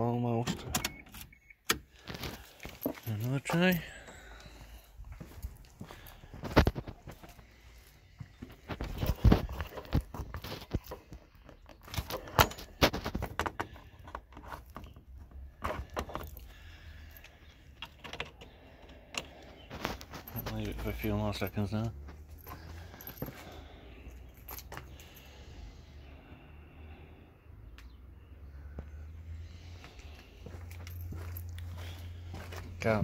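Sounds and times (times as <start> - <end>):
footsteps: 2.1 - 11.1, 29.7 - 33.0.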